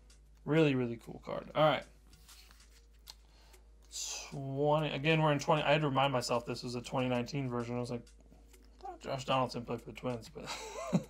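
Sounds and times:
cards rustling: 2.0s - 3.6s.

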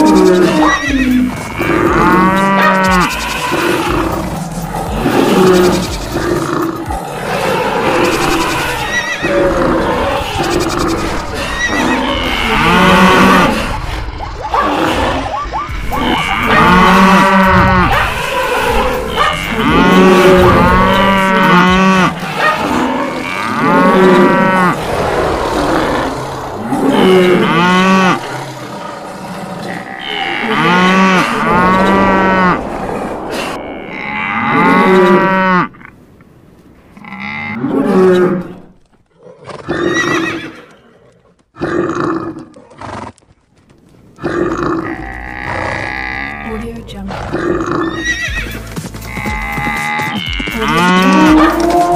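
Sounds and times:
cattle mooing: 0.0s - 13.8s, 14.6s - 35.8s, 49.1s - 51.9s
background noise: 0.0s - 51.9s.

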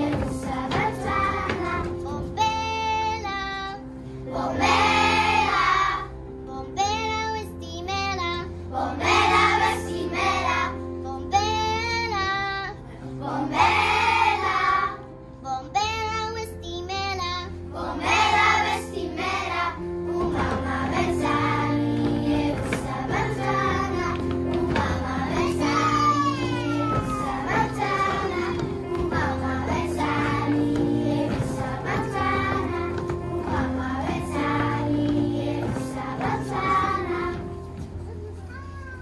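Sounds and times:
children's choir singing: 0.0s - 3.7s, 4.3s - 6.1s, 8.7s - 10.8s, 13.1s - 15.1s, 17.7s - 38.0s.

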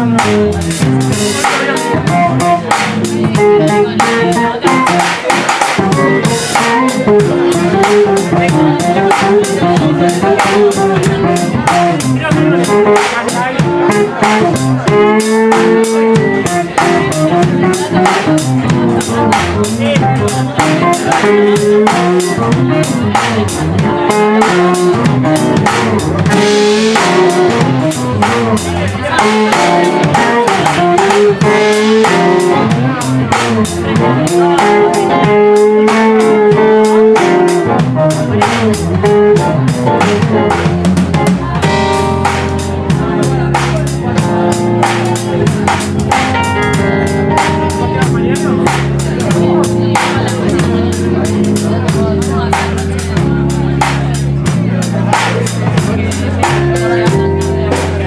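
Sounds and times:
drum kit cymbals: 0.0s - 58.0s
electric guitar: 0.0s - 58.0s
keyboard: 0.0s - 58.0s.

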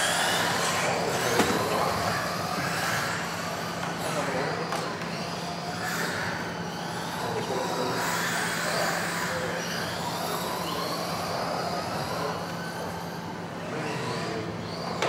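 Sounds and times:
electric motors whining: 0.0s - 15.0s.

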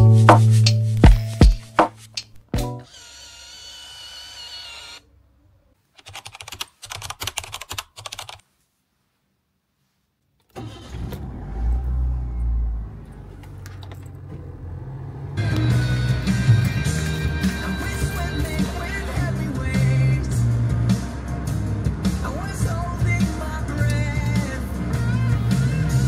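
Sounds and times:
camera motor whirring: 2.8s - 5.0s
quick clicks: 6.0s - 8.4s
car rumble from inside: 11.0s - 16.8s, 17.9s - 26.0s.

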